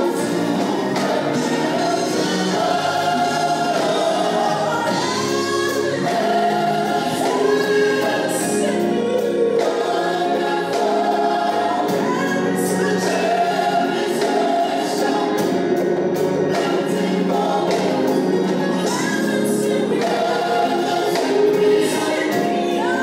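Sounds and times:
woman singing lead: 0:00.0 - 0:16.0, 0:16.6 - 0:23.0
choir singing: 0:00.0 - 0:23.0
drums and cymbals: 0:00.0 - 0:23.0.

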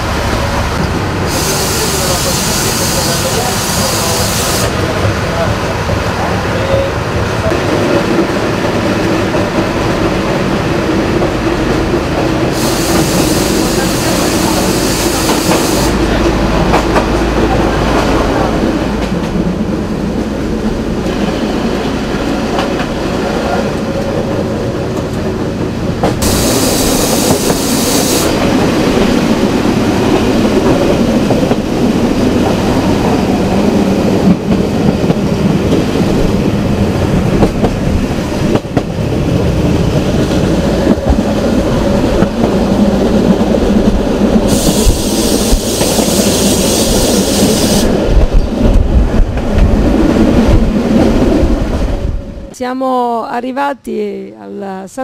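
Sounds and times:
diesel railcar rumble: 0:00.0 - 0:55.0
clacks over rail joints: 0:15.2 - 0:19.4.

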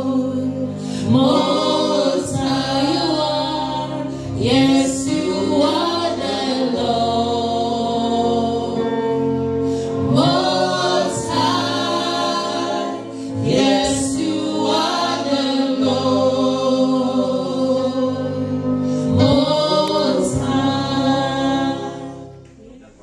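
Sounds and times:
group singing a gospel song: 0:00.0 - 0:22.5
held chords: 0:00.0 - 0:23.0.

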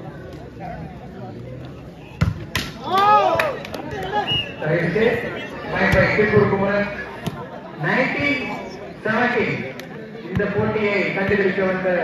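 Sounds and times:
players and crowd shouting: 0:02.8 - 0:08.8.

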